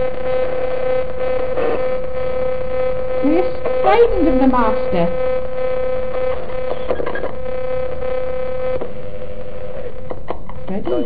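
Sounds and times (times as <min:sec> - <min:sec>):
loud buzzing hum: 0:00.0 - 0:11.0.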